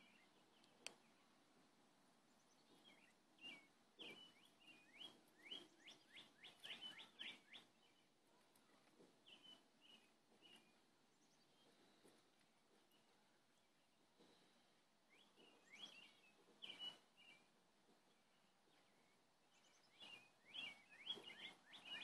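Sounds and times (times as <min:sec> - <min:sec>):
songbird chirping: 0:00.0 - 0:22.0.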